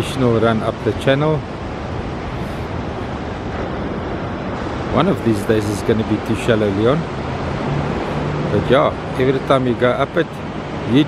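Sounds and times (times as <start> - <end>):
motorboat running at speed: 0.0 - 11.0
wind on microphone: 0.0 - 11.0.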